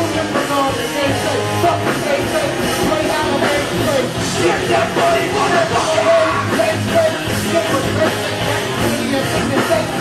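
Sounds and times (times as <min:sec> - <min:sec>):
person rapping into microphone: 0:00.0 - 0:10.0
rock band playing loudly: 0:00.0 - 0:10.0.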